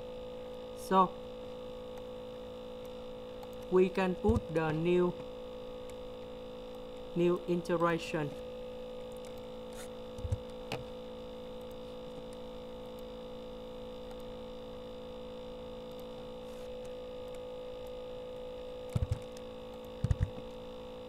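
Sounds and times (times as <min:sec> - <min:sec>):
electrical hum: 0:00.0 - 0:21.0.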